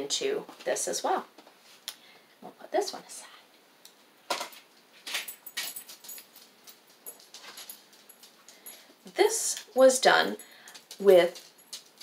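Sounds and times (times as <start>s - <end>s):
craft supplies rustling and clattering: 4.3s - 8.6s.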